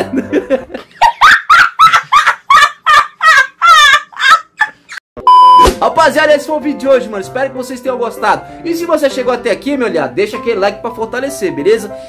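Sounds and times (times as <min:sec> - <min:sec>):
electronic beep: 0:05.2 - 0:05.7.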